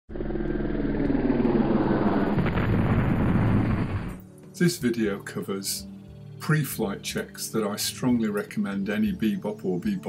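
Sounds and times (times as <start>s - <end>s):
drone motors and propellers: 0.1s - 4.2s.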